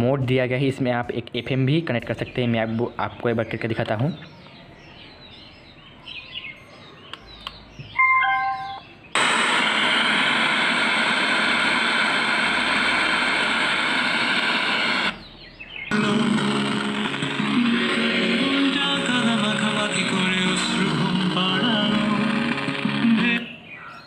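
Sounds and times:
speaker prompt beeps: 8.0 - 8.8
radio music through speaker: 8.0 - 15.2, 15.9 - 24.0
radio static hiss: 8.1 - 15.2, 15.9 - 23.7.

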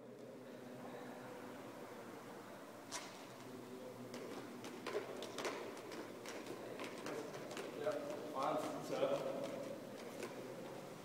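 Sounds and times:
juggling clubs smacking into hands: 4.1 - 10.4.

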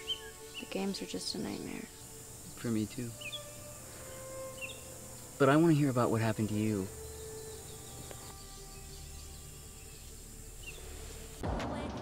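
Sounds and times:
bird chirps: 0.0 - 11.1
faint steady hiss: 0.0 - 11.4.

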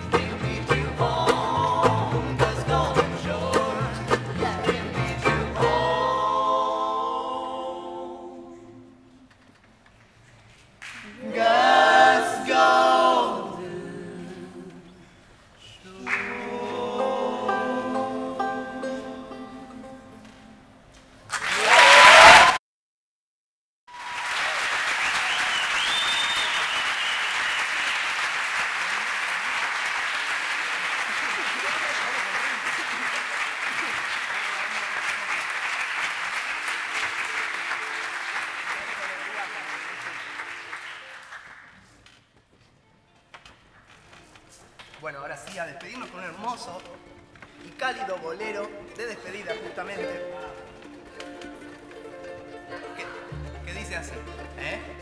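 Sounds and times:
band singing: 0.0 - 8.5, 16.0 - 20.0
audience applauding: 21.3 - 22.6, 23.9 - 42.0
whistle: 25.1 - 27.9.

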